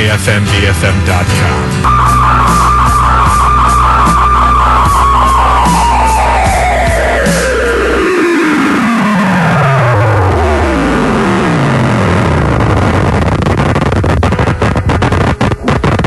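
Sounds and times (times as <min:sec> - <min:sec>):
noisy guitar texture: 0:00.0 - 0:16.0
music tape stop effect: 0:01.8 - 0:16.0
stuttering chopped-up effect: 0:01.9 - 0:16.0.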